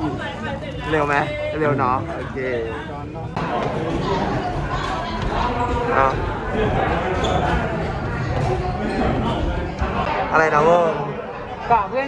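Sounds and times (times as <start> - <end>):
voices chattering: 0.0 - 12.0.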